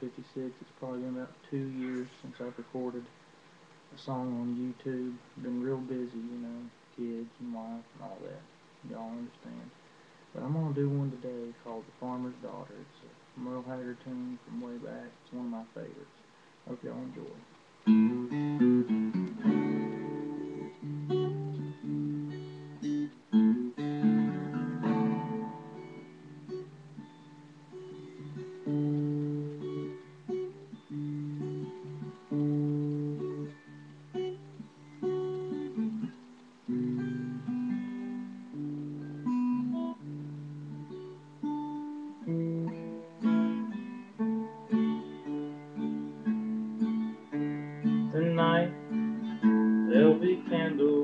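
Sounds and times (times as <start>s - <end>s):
acoustic guitar strumming chords: 0.0s - 3.1s, 16.7s - 51.0s.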